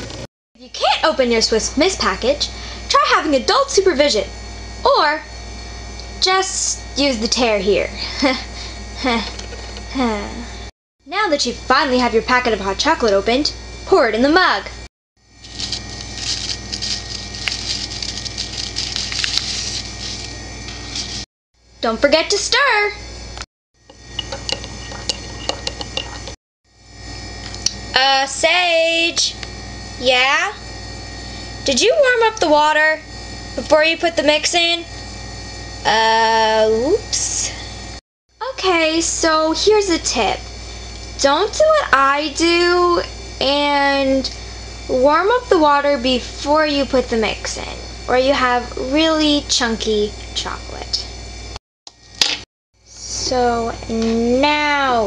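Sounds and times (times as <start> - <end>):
low steady hum: 0.0 - 23.3.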